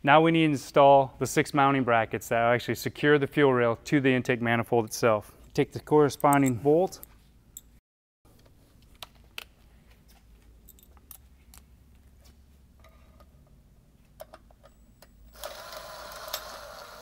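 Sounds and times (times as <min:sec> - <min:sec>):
cordless drill whirring: 0:15.3 - 0:17.0.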